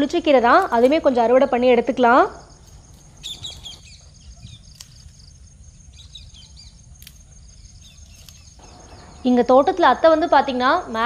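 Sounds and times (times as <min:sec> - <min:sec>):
low outdoor background hum: 0:00.0 - 0:11.0
faint high bird chirps: 0:03.1 - 0:05.2, 0:05.9 - 0:06.8, 0:07.4 - 0:10.0.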